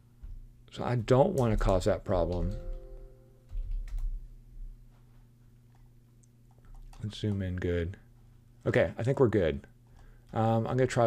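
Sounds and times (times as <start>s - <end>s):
computer keyboard keystrokes: 3.5s - 4.2s.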